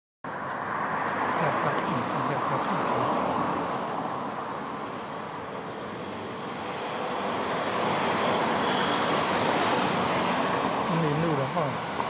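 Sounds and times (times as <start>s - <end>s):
passing cars and scooters: 0.3s - 12.0s.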